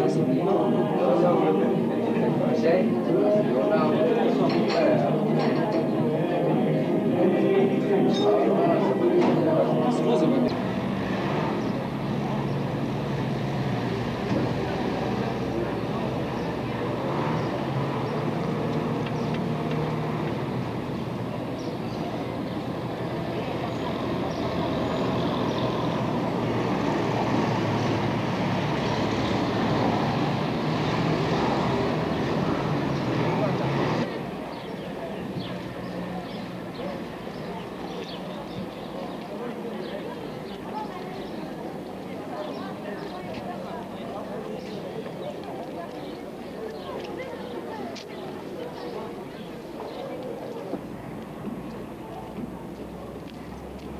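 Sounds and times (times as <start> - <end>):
crowd talking: 0.0 - 53.9.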